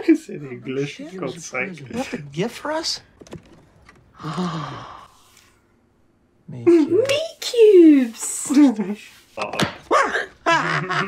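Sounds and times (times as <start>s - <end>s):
person sighing: 4.2s - 5.4s.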